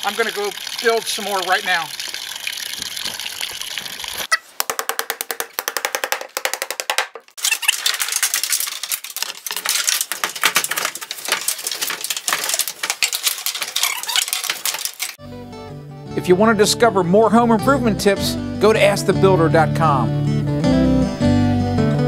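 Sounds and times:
water rushing: 0.0 - 4.3.

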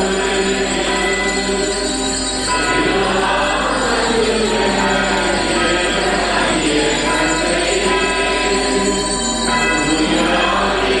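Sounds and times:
choir singing a hymn: 0.0 - 11.0
small bells jingling: 0.0 - 11.0.

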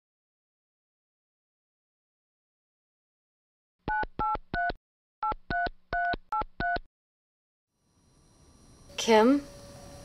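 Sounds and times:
phone keypad dialing beeps: 3.9 - 6.8.

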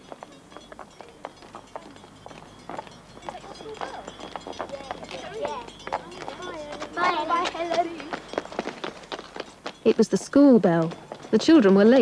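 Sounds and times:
children chatting faintly: 0.0 - 2.4, 3.2 - 8.3
distant school bell ringing: 0.0 - 12.0
footsteps on pavement: 0.0 - 12.0.

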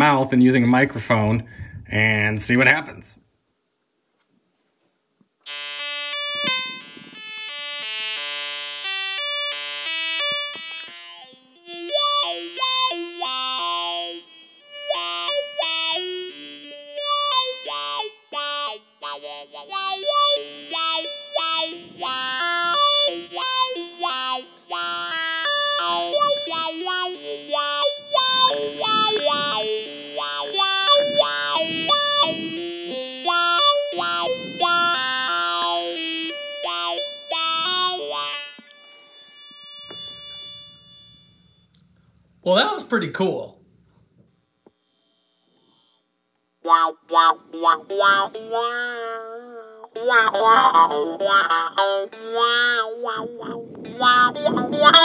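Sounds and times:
talk box synthesizer melody: 5.5 - 41.6, 50.2 - 55.0.

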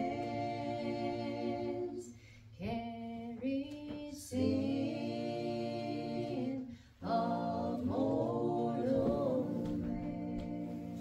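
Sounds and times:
women singing a hymn: 0.0 - 11.0.

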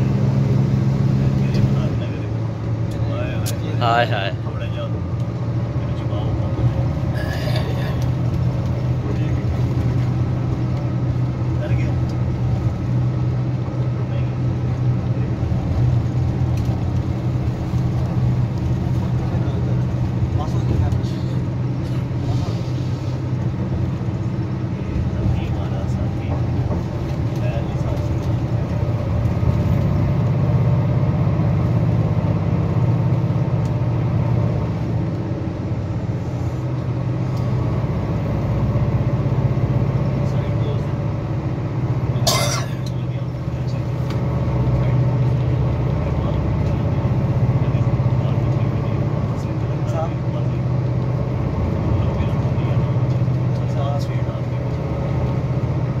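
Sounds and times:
vehicle engine and road drone: 0.0 - 56.0.

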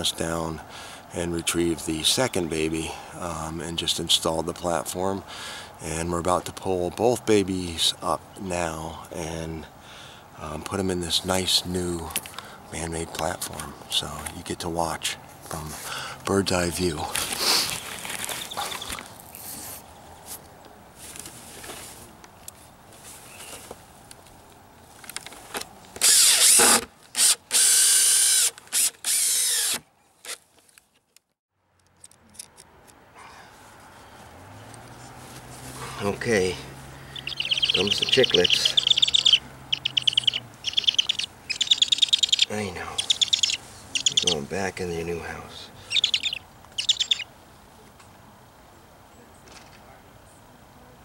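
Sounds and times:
faint outdoor background: 0.0 - 51.0
cordless drill driving fasteners: 26.0 - 30.4
high chirping bird: 37.0 - 44.5, 45.8 - 47.3.

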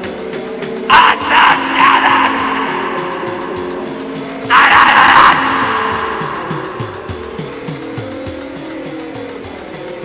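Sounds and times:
droning chord: 0.0 - 9.6
drum machine beat: 2.2 - 10.0.

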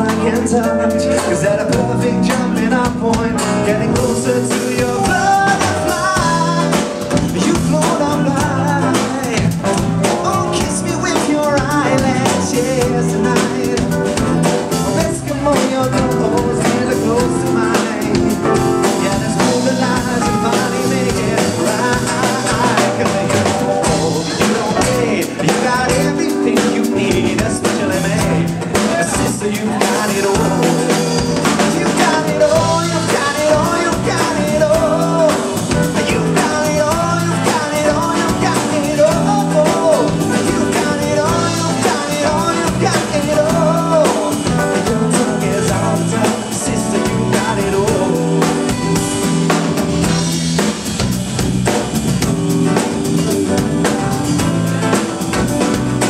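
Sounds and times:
live band playing: 0.0 - 56.0
steady drum beat: 0.0 - 56.0.

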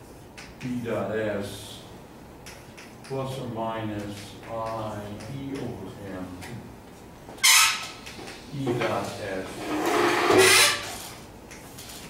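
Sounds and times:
chalk scraping on blackboard: 9.5 - 11.2.

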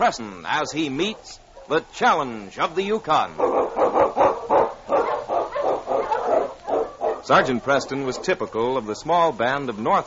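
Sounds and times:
dogs barking: 1.0 - 1.9, 3.3 - 8.6.

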